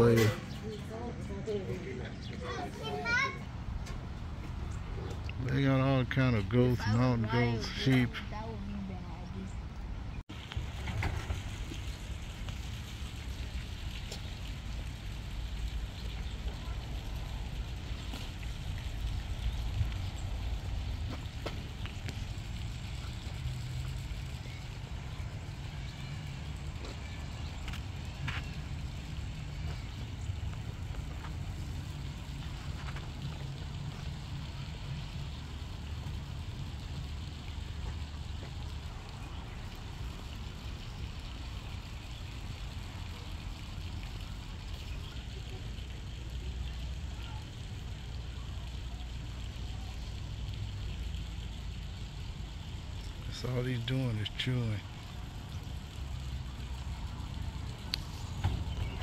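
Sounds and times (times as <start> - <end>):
low outdoor rumble: 0.0 - 59.0.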